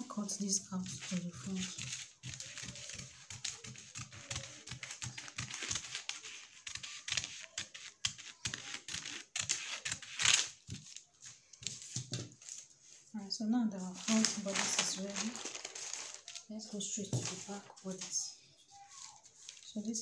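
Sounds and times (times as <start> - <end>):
paper crinkling: 0.6 - 13.0, 13.8 - 20.0
scissors snipping paper: 1.0 - 10.9.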